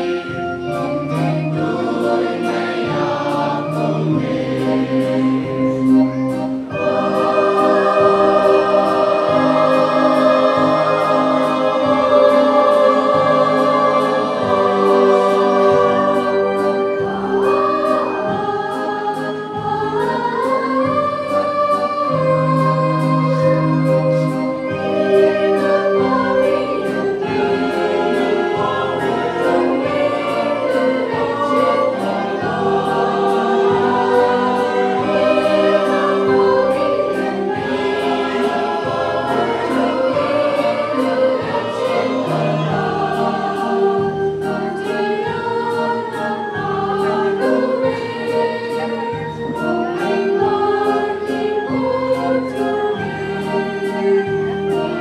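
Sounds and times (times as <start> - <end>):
choir singing a carol: 0.0 - 55.0
instrumental accompaniment: 0.0 - 55.0.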